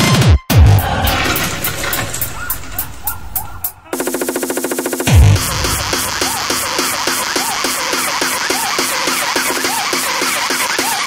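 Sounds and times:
rapid buzzing stutter: 0:04.0 - 0:09.2
noisy synth wash: 0:05.0 - 0:09.2.

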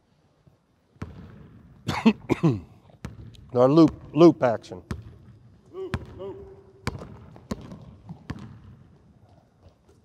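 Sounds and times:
low hum of gymnasium: 0:00.0 - 0:10.0.

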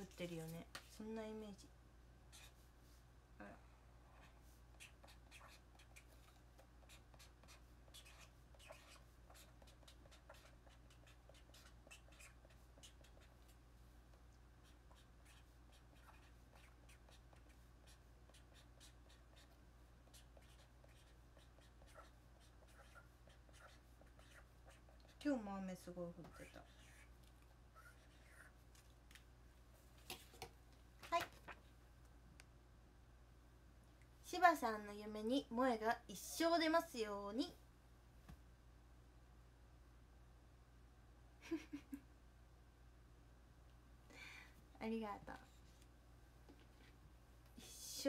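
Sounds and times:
low steady hum: 0:00.0 - 0:48.0.

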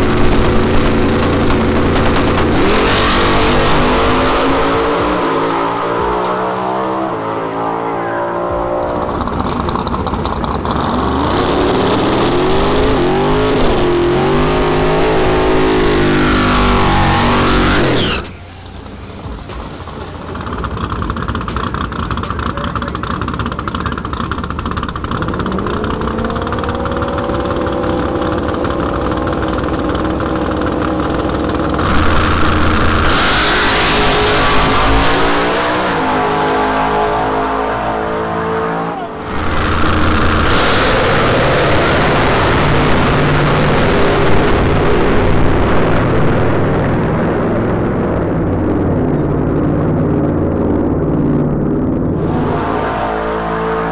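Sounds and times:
race car engines at full throttle: 0:00.0 - 0:53.9.

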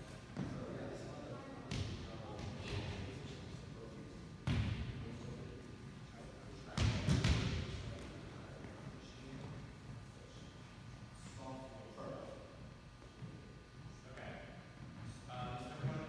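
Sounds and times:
volleyballs thudding with echo: 0:06.7 - 0:08.1.

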